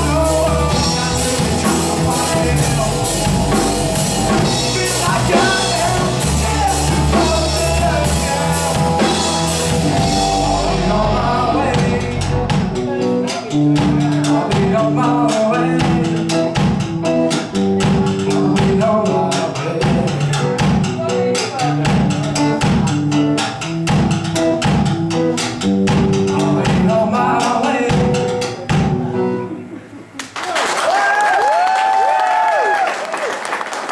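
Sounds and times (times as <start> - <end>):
live rock band playing: 0.0 - 30.2
audience applauding: 30.2 - 33.9.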